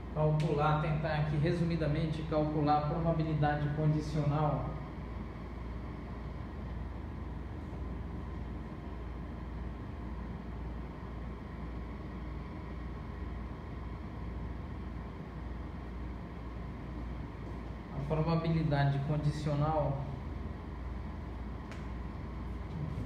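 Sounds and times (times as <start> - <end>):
low room hum: 0.0 - 23.0.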